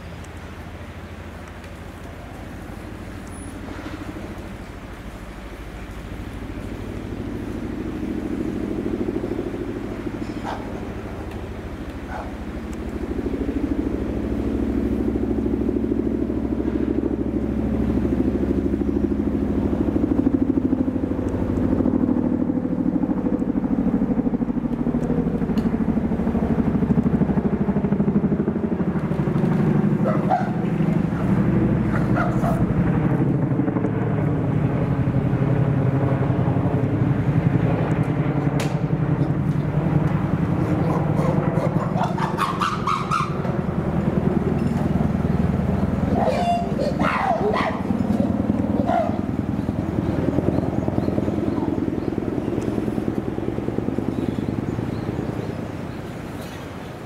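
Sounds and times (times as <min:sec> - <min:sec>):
low engine drone: 0:00.0 - 0:57.0.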